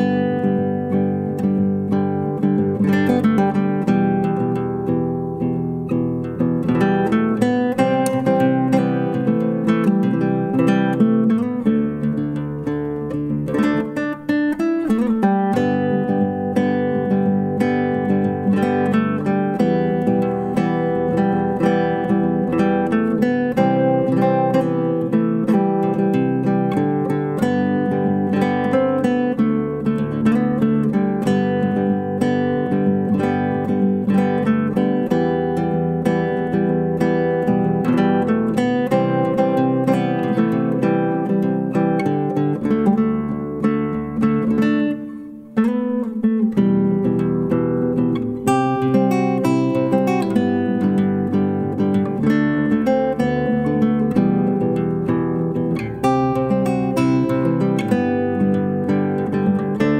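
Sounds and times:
classical guitar plucked: 0.0s - 59.9s.

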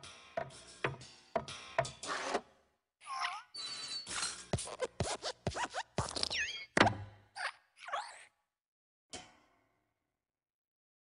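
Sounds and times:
springy cartoon squeaks: 3.2s - 8.3s.

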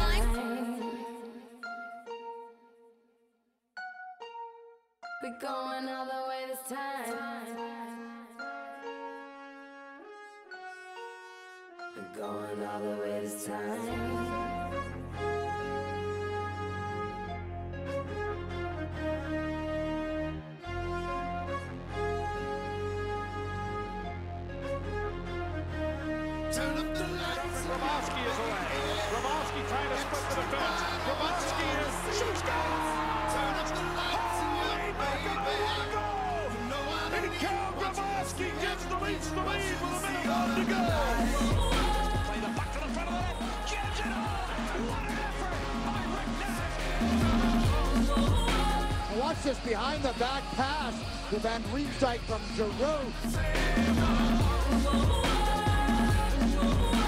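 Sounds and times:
heavy bass line: 0.0s - 0.4s, 25.6s - 57.0s
brass section playing chords: 13.9s - 57.0s
voice singing gliding notes: 26.5s - 51.5s.

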